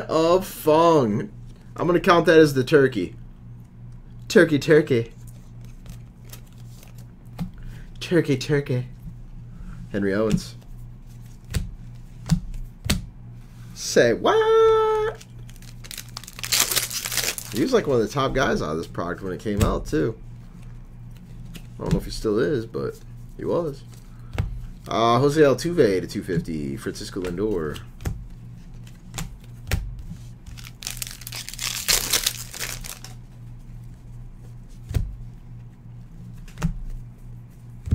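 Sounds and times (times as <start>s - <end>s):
cards rustling shuffle: 5.1s - 7.5s, 15.1s - 18.0s, 26.4s - 35.0s
foil wrapper crackling: 15.2s - 17.9s, 30.5s - 33.2s
cards clicking: 30.5s - 33.2s.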